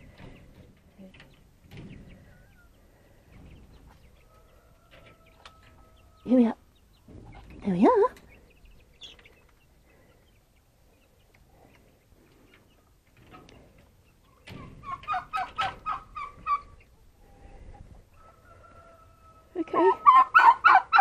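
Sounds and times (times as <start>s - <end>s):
chicken clucking: 0.0s - 21.0s.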